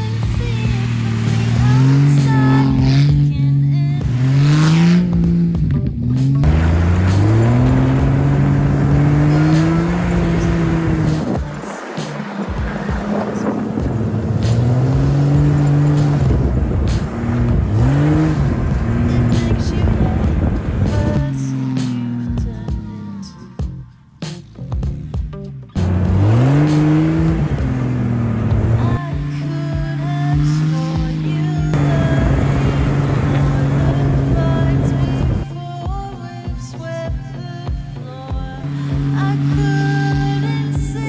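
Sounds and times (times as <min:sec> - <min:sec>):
wheels spinning on snow: 0:00.0 - 0:05.4, 0:06.4 - 0:22.2, 0:25.8 - 0:35.5
car engine revving: 0:00.0 - 0:41.0
music: 0:00.0 - 0:41.0.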